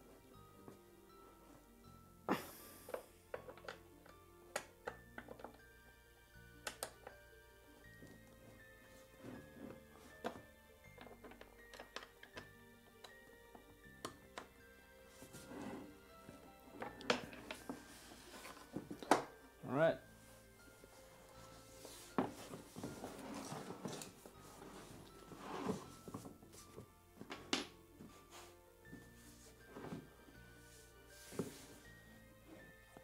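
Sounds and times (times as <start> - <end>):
background music with sustained notes: 0.0 - 33.0.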